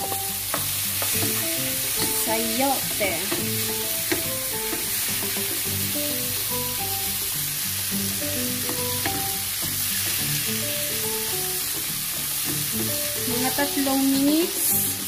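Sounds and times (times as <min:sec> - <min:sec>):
food sizzling in oil: 0:00.0 - 0:15.0
simple melodic background music: 0:00.0 - 0:15.0.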